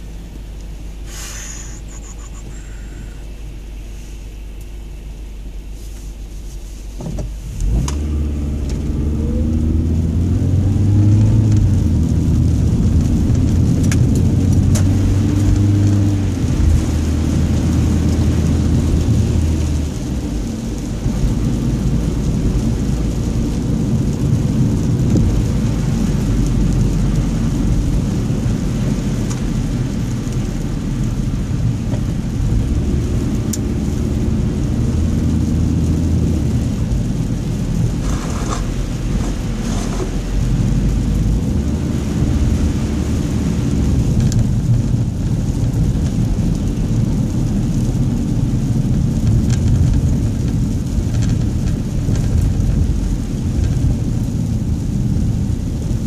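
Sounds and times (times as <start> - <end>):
car engine droning: 0.0 - 56.0
tyres on wet slushy road: 0.0 - 56.0.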